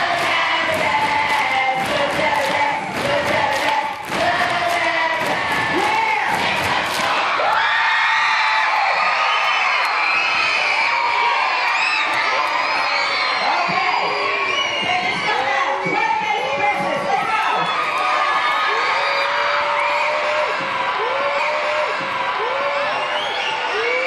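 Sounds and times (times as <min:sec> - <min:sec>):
children singing: 0:00.0 - 0:07.2
rhythmic hand claps: 0:00.0 - 0:07.7
children cheering and shouting: 0:06.9 - 0:14.5, 0:17.1 - 0:24.0.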